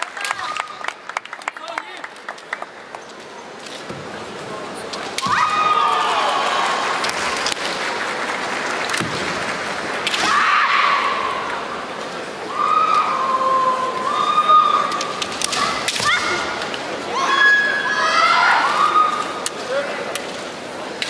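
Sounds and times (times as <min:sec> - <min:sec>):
murmur of crowd: 0:00.0 - 0:21.0.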